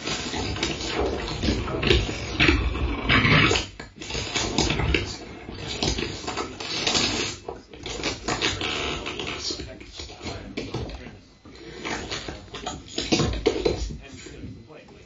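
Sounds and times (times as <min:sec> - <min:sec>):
turntable scratching: 0:00.0 - 0:15.0.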